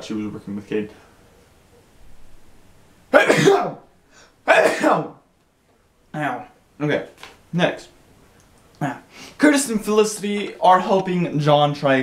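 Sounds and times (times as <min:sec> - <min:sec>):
man coughing harshly: 0:03.1 - 0:03.8, 0:04.5 - 0:05.2.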